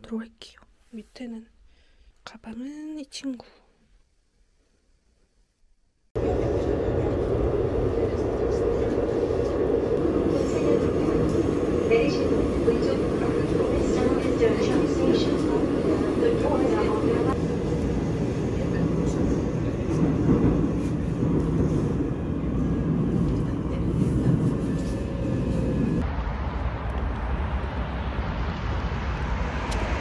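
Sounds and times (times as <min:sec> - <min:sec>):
subway train rumble: 0:06.2 - 0:30.0
street traffic noise: 0:22.0 - 0:30.0.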